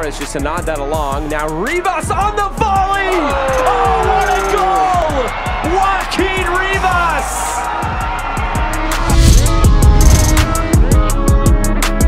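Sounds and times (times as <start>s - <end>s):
backing music with steady beat: 0.0s - 12.0s
commentator shouting excitedly: 1.3s - 7.8s
music with drums and guitar: 8.4s - 12.0s.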